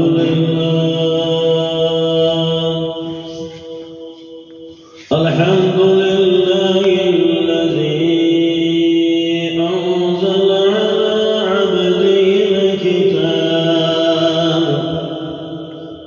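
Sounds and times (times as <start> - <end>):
man chanting through a microphone: 0.0 - 16.0.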